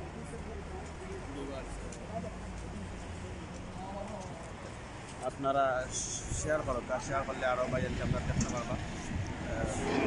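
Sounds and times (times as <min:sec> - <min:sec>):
faint voices of passers-by: 0:00.0 - 0:10.0.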